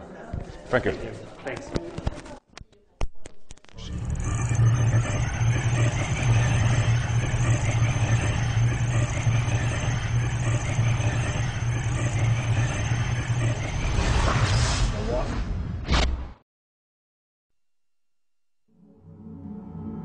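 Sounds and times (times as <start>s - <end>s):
low rumbling drone: 3.8s - 14.9s.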